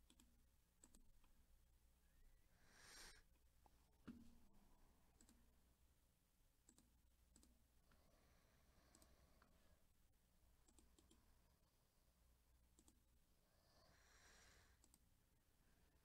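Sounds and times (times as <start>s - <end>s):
computer mouse clicks: 0.0s - 1.4s, 5.2s - 5.4s, 6.6s - 7.6s, 8.8s - 9.5s, 10.6s - 11.2s, 12.7s - 13.0s, 14.8s - 15.1s.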